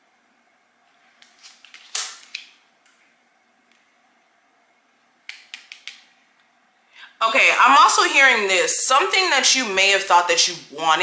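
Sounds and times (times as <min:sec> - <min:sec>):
cards clicking: 0:05.3 - 0:06.0.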